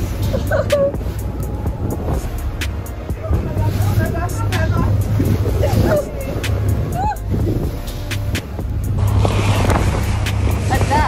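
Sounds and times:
boat engine droning: 0.0s - 11.0s
sea spray splashing: 0.0s - 11.0s
wind rushing: 0.0s - 11.0s.

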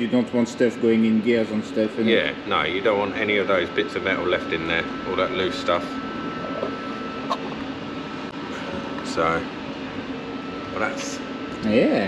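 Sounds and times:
mechanical hum of machinery: 0.0s - 12.0s.

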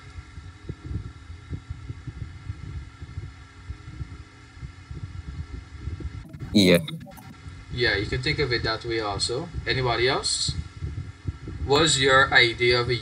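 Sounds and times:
electrical hum: 0.0s - 8.6s.

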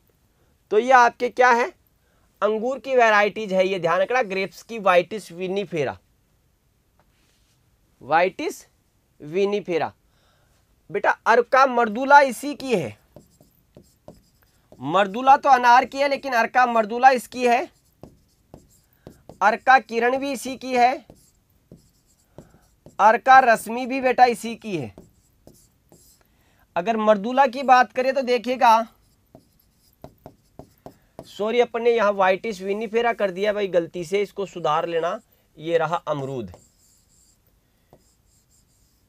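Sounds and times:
marker writing on whiteboard: 11.9s - 26.2s, 27.5s - 31.6s, 36.2s - 39.0s
man talking: 14.8s - 17.7s, 23.0s - 25.0s, 31.3s - 36.6s.

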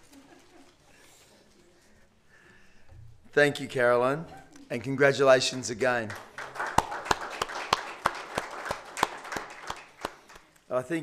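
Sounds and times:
man clapping hands: 6.0s - 10.5s.

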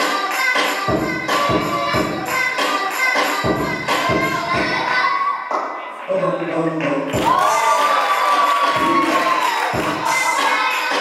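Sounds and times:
loud dance music: 0.0s - 11.0s
deep thumping beat: 0.9s - 2.3s, 3.4s - 4.9s, 7.1s - 7.4s, 9.7s - 10.3s
crowd cheering and shouting: 7.1s - 11.0s.

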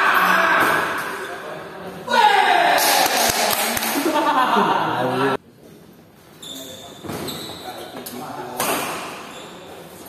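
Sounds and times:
high-pitched shoe squeak: 6.4s - 8.0s.

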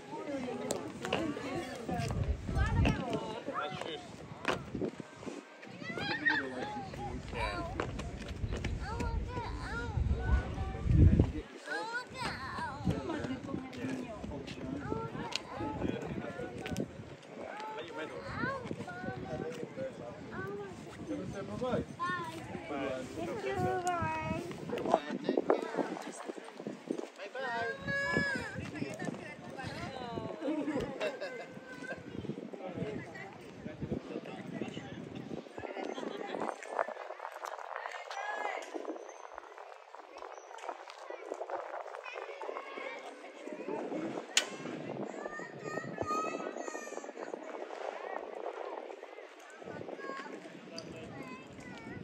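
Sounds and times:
people talking indistinctly: 0.0s - 52.0s
people's voices: 0.0s - 52.0s.

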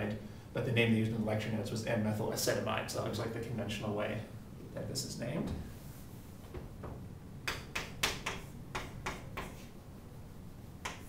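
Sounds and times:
chalk tapping and scraping on blackboard: 7.5s - 11.0s.

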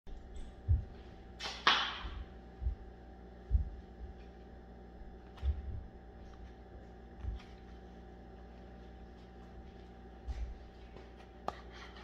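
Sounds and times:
faint steady hum: 0.1s - 12.0s
dull low thumps: 0.3s - 1.0s, 2.0s - 4.2s, 5.4s - 6.0s.

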